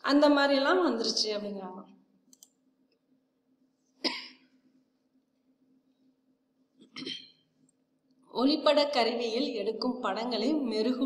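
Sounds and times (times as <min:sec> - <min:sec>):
computer mouse clicks: 0:02.3 - 0:02.6.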